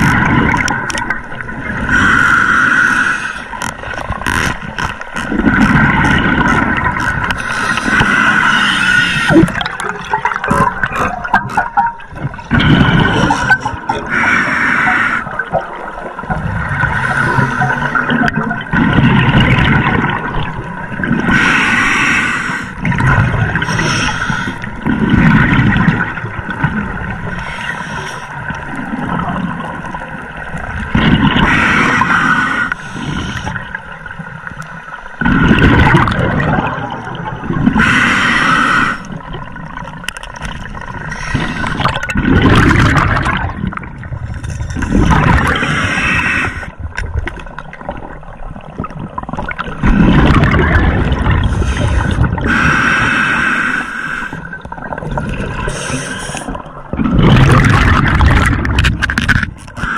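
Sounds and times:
gurgling exhaled bubbles: 0.0s - 2.3s, 3.5s - 22.0s, 22.8s - 27.8s, 28.4s - 32.2s, 35.1s - 53.1s, 54.4s - 59.9s
diver breathing through regulator: 1.8s - 3.7s, 7.3s - 9.6s, 12.5s - 15.4s, 16.9s - 18.1s, 21.2s - 22.9s, 23.6s - 24.8s, 27.4s - 28.4s, 31.4s - 33.8s, 37.7s - 39.2s, 41.0s - 42.0s, 45.3s - 46.8s, 51.4s - 54.6s, 55.5s - 56.7s.

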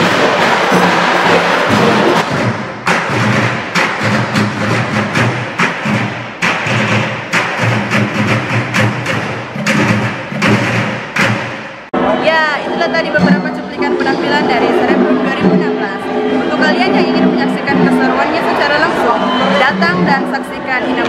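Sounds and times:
drums beaten with sticks: 0.0s - 11.9s
dance music: 0.0s - 21.0s.

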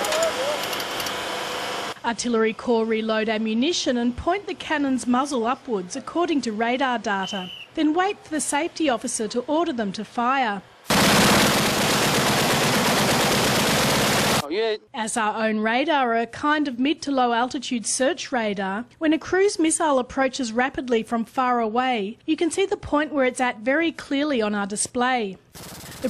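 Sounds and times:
faint voice: 0.0s - 0.6s
cannon rapid fire: 10.9s - 14.4s
mechanical running noise: 10.9s - 14.4s, 25.6s - 26.0s.

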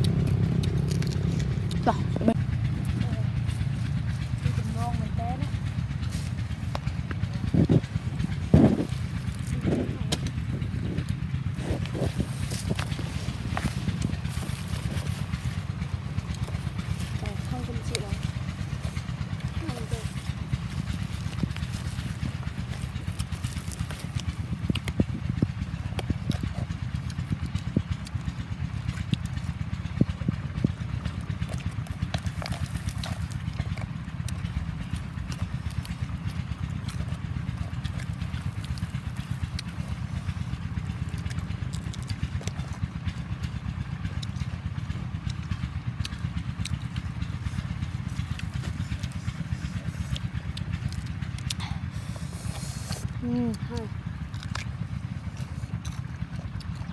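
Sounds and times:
crunchy chewing of bell pepper: 0.0s - 56.9s
steady low rumble: 0.0s - 56.9s.

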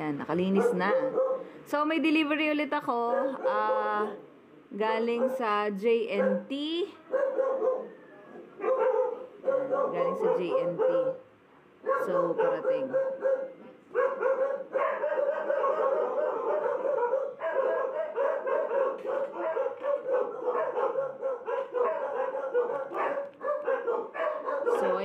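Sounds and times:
dogs barking: 0.4s - 1.6s, 3.1s - 4.1s, 5.0s - 25.0s.

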